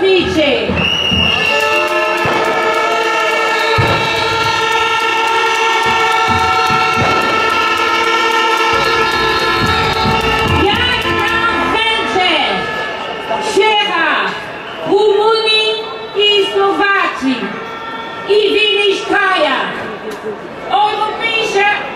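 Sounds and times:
crowd noise: 0.0 - 21.9
hand-held horns blowing: 0.9 - 13.4
low thumps: 3.6 - 12.7.

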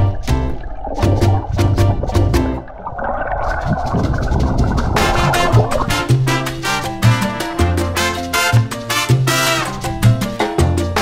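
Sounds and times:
low underwater gurgles: 0.0 - 7.6
muffled underwater rushing: 0.0 - 8.4.

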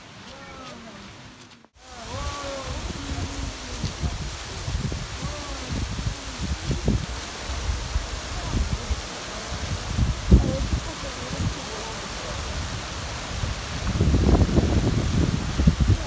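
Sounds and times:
waterfall rushing: 0.0 - 16.0
wind buffeting microphone: 1.8 - 16.0.

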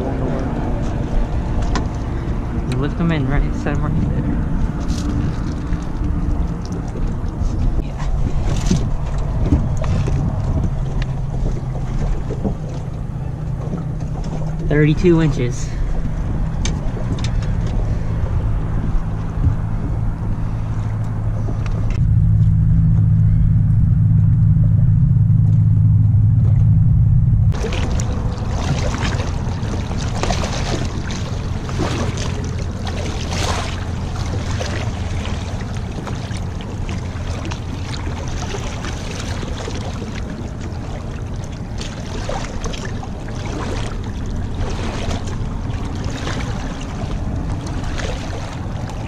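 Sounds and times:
boat motor humming: 0.0 - 49.0
water splashing and sloshing: 0.0 - 49.0.

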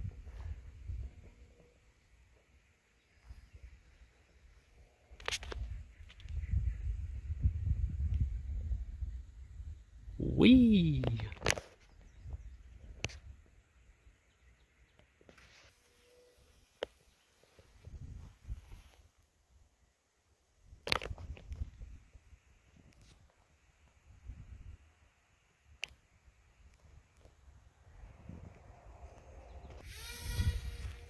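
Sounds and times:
wind buffeting microphone: 5.6 - 10.4.

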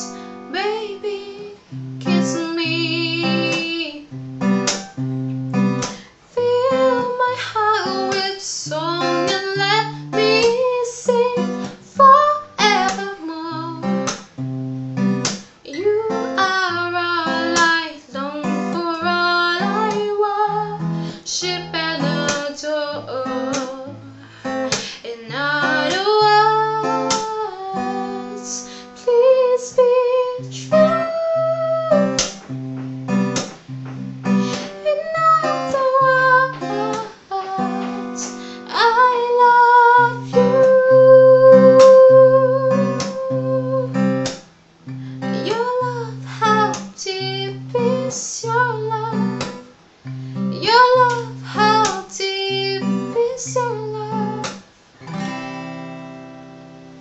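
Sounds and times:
woman singing: 0.0 - 4.2, 5.6 - 14.3, 15.0 - 33.5, 34.2 - 44.4, 45.2 - 49.7, 50.4 - 54.6
strummed acoustic guitar: 0.0 - 57.0.

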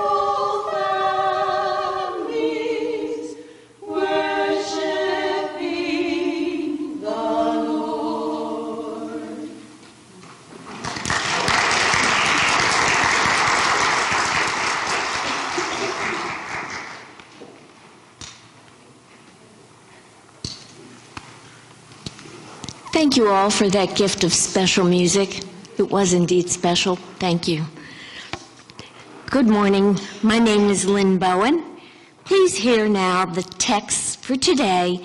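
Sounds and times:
women singing in harmony: 0.0 - 9.8
audience applause: 10.8 - 17.2.

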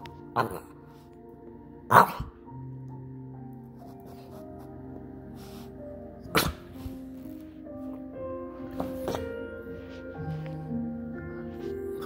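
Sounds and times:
background music: 0.0 - 12.0
dog sneezing: 5.4 - 7.0.

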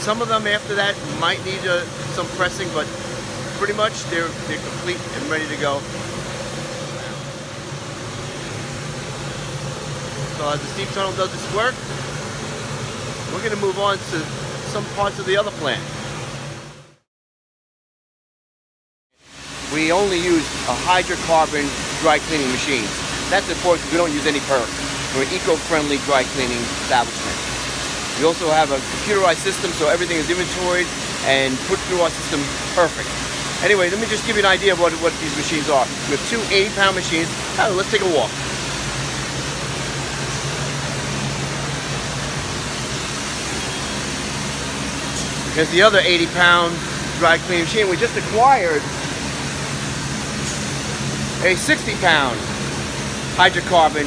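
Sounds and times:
machinery hum: 0.0 - 17.0, 19.2 - 54.0.

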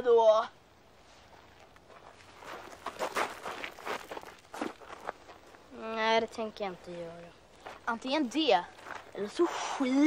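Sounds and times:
scuffling footsteps: 1.2 - 9.3.

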